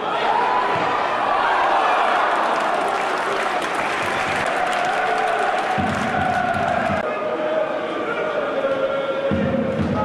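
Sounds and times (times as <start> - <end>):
stadium crowd cheering: 0.0 - 8.5
clapping: 2.4 - 7.0.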